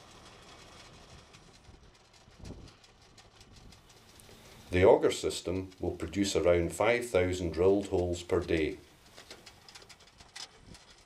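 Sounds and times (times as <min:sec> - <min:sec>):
tractor engine rumble: 0:00.0 - 0:11.0.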